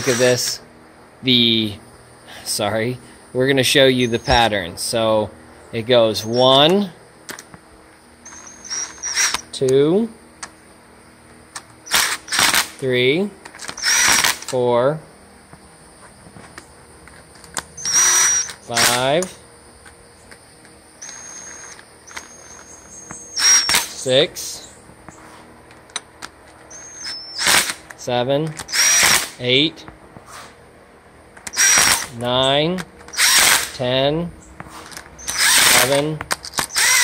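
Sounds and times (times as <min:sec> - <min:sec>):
cordless drill motor whine: 0:00.0 - 0:00.6, 0:08.2 - 0:09.5, 0:11.8 - 0:12.7, 0:13.6 - 0:14.5, 0:15.8 - 0:24.0, 0:26.7 - 0:27.8, 0:28.6 - 0:29.4, 0:31.4 - 0:32.2, 0:33.0 - 0:33.8, 0:34.9 - 0:37.0.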